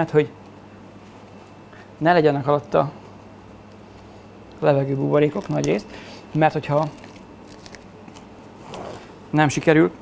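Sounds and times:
cling film crackling: 6.7 - 8.3.

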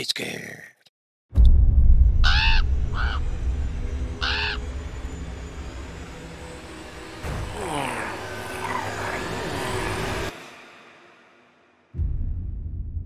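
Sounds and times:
low rumbling drone: 1.4 - 10.3, 12.0 - 13.0
crow cawing: 2.2 - 3.3, 4.2 - 4.7, 8.5 - 9.5
eerie sliding tones and hiss: 2.8 - 11.4.

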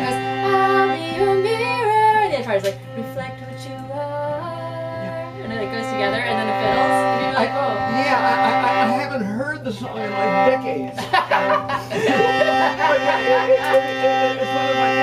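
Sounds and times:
fiddles playing bowed notes: 0.0 - 15.0.

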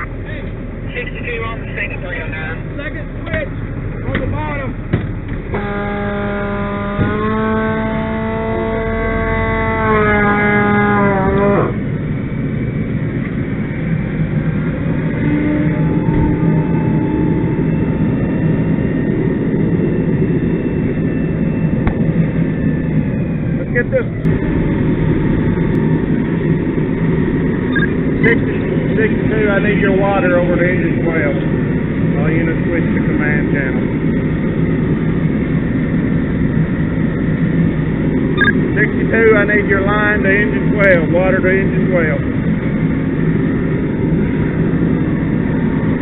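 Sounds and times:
diesel engine and pump running: 0.0 - 46.0
loud steady pitched tone: 5.5 - 46.0.

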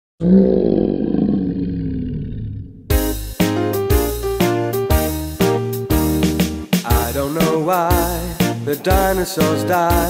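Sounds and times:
dinosaur roar: 0.2 - 2.9.

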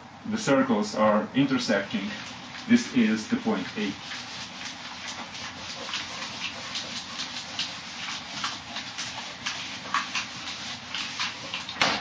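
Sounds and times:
eraser wiping whiteboard: 1.4 - 12.0.

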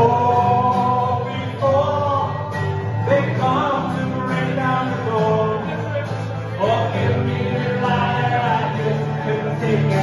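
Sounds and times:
electric bass guitar: 0.0 - 10.0
man singing: 0.0 - 10.0
strummed acoustic guitars: 0.0 - 10.0.

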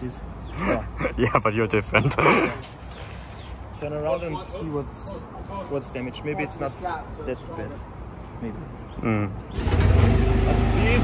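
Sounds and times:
diesel engine idling: 9.5 - 11.0.

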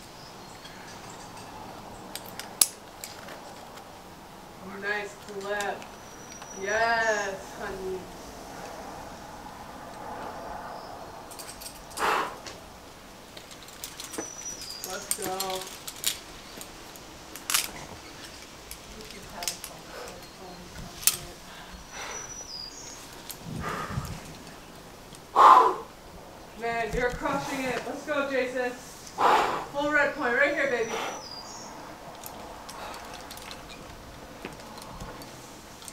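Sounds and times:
distant voices: 0.0 - 35.9
climbing hardware clicking: 13.3 - 16.7, 32.1 - 35.9
loud harsh call: 25.4 - 25.9.

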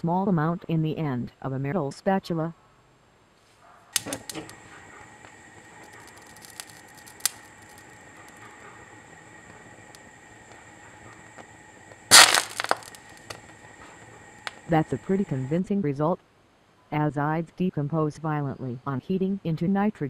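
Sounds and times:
sharp click: 4.0 - 4.6
burst of crackling pops: 4.0 - 15.4.

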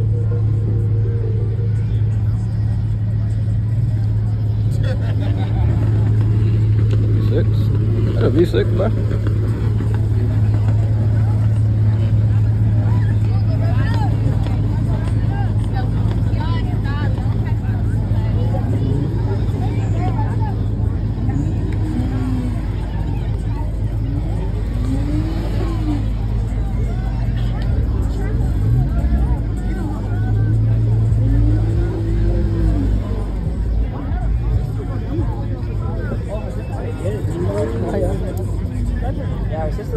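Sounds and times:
car engine idling: 0.0 - 39.9
crowd of people talking: 0.0 - 39.9.

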